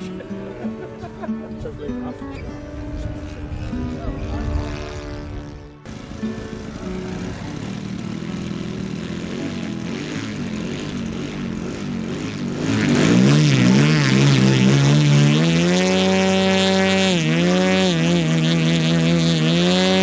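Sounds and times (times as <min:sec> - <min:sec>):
model plane engine running: 0:02.7 - 0:20.0.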